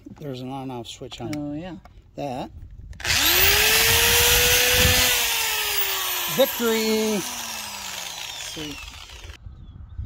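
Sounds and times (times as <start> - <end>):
electric drill running: 3.0 - 9.4.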